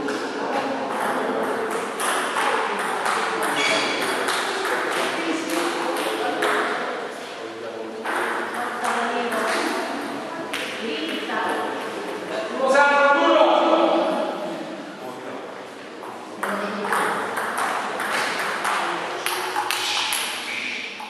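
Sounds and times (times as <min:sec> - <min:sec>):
people talking: 0:00.0 - 0:20.8
table tennis balls clicking: 0:16.4 - 0:21.0.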